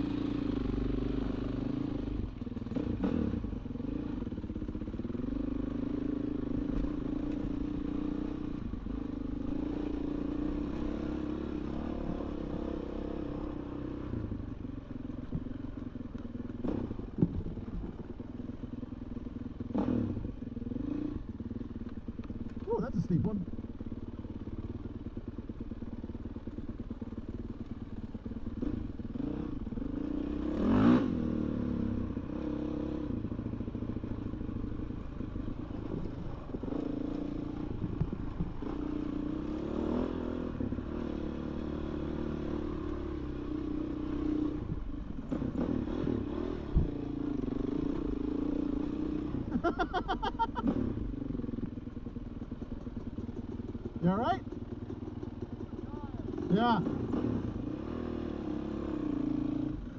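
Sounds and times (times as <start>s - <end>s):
dirt bike engine revving: 0.0s - 14.3s, 19.6s - 21.4s, 28.4s - 34.2s, 35.1s - 51.7s, 55.6s - 59.8s
chassis rattle and trail clatter: 0.0s - 31.7s, 32.3s - 58.1s.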